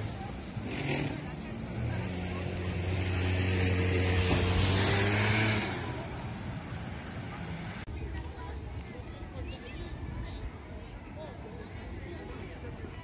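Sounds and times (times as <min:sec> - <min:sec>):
vehicle engine humming: 0:00.0 - 0:07.9
street voices: 0:00.0 - 0:13.0.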